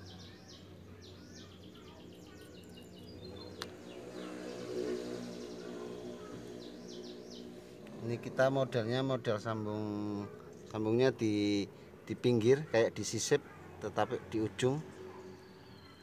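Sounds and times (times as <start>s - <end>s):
steady low hum: 0.0s - 12.4s
small birds chirping: 0.0s - 16.0s.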